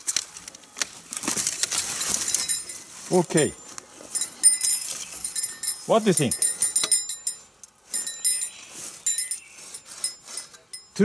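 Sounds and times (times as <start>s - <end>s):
saw blades clinking: 2.0s - 11.0s.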